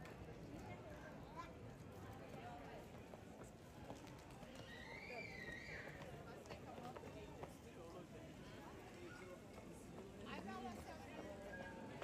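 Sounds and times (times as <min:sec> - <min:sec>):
indistinct voices of passers-by: 0:00.0 - 0:12.0.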